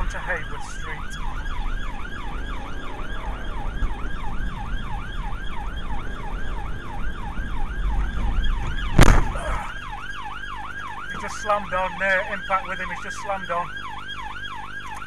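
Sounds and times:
engine and road rumble: 0.0s - 15.0s
police siren yelping: 0.0s - 15.0s
car crash: 8.8s - 9.6s.

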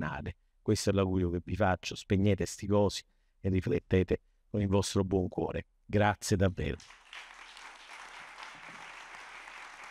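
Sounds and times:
audience applause: 6.8s - 9.9s.

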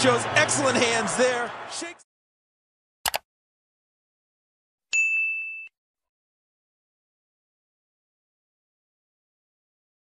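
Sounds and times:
notification bell ding: 4.9s - 5.7s.

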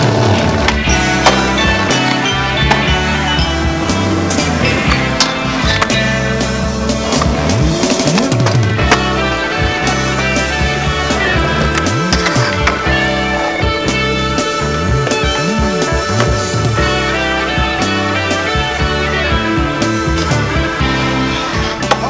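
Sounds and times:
rock music: 0.0s - 22.0s
skateboard wheels rolling on pavement: 0.0s - 22.0s.

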